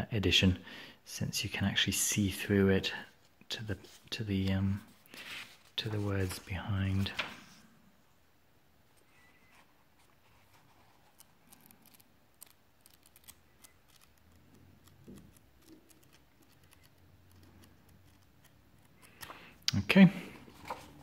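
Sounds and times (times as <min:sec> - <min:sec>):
book pages rustling: 0:03.1 - 0:07.6, 0:09.5 - 0:19.6, 0:20.2 - 0:21.0.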